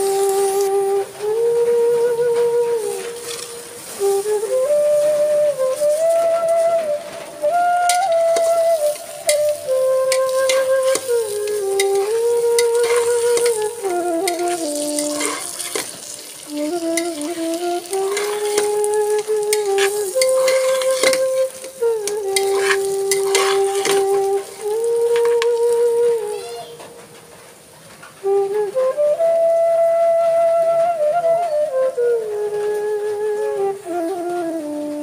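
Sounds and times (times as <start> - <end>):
rice sizzling: 0.0 - 28.4
slow flute melody: 0.0 - 35.0
metal spatula scraping pot: 3.2 - 3.7, 9.2 - 24.9.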